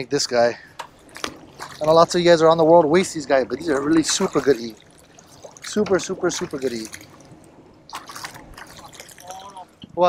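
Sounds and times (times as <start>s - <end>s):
seawater splashing and dripping: 0.6s - 10.0s.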